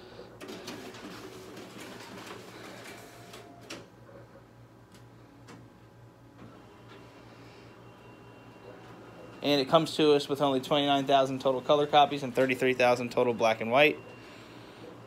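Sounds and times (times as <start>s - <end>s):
copier mechanical running noise: 0.0s - 15.0s.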